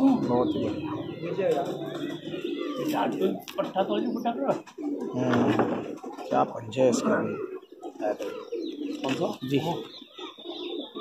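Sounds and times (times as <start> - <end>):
people talking: 0.0 - 10.0
pigeons cooing: 0.0 - 11.0.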